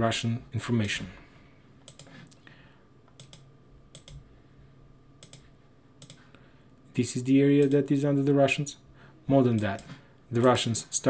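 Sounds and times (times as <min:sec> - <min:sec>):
faint steady hum: 0:00.0 - 0:11.0
computer mouse clicking: 0:01.8 - 0:02.4, 0:03.1 - 0:04.2, 0:05.2 - 0:06.2, 0:07.6 - 0:07.8.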